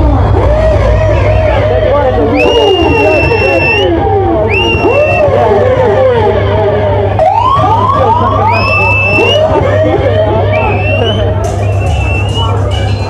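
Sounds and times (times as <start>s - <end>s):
dub reggae bass: 0.0s - 13.0s.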